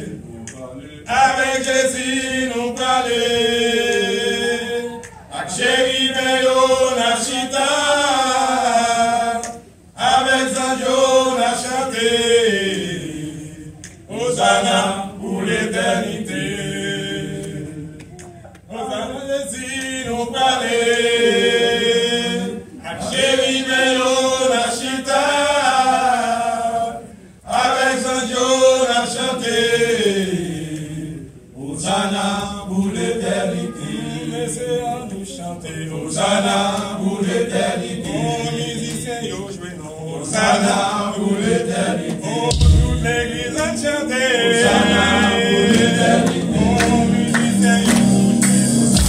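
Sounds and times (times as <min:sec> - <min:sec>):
men's choir singing a hymn: 0:00.0 - 0:49.0.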